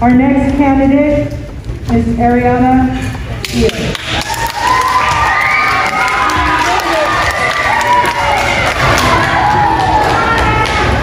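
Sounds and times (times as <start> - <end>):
children cheering and shouting: 4.3 - 11.0.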